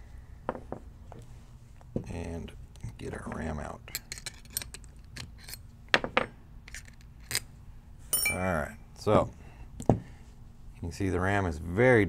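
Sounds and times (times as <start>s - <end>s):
small metal clicks and clinks: 3.9s - 5.6s.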